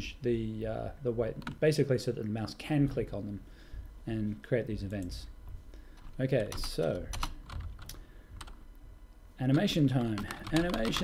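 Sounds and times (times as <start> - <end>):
computer keyboard keystrokes: 6.0 - 8.6, 9.5 - 11.0.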